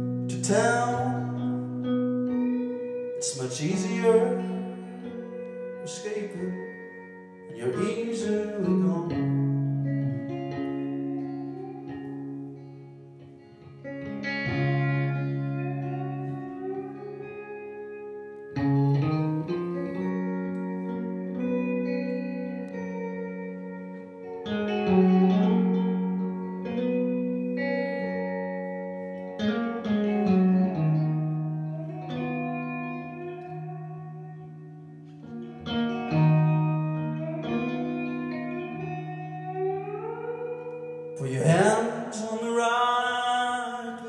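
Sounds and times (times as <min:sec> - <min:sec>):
electric guitar playing: 0:00.0 - 0:44.0.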